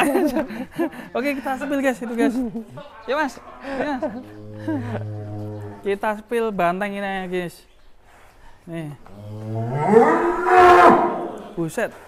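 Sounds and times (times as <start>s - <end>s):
bull bellowing: 4.0s - 5.9s, 9.2s - 11.6s.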